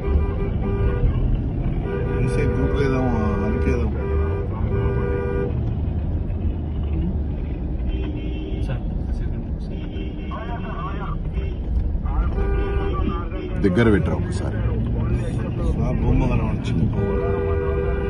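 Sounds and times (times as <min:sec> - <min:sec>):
car horns honking: 0:00.0 - 0:05.7, 0:07.4 - 0:08.8, 0:09.6 - 0:18.0
car rumble inside cabin: 0:00.0 - 0:18.0.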